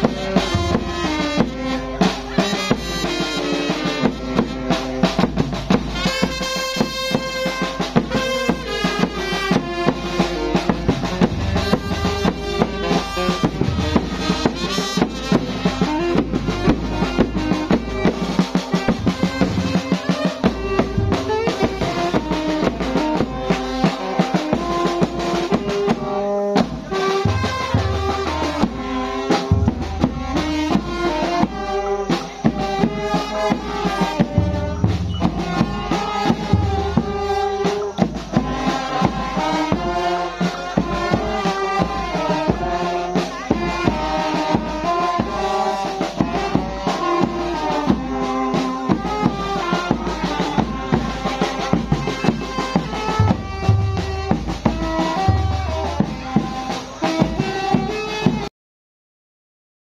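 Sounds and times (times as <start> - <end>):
drum beat: 0.0 - 58.5
saxophones and brass melody: 0.0 - 58.5.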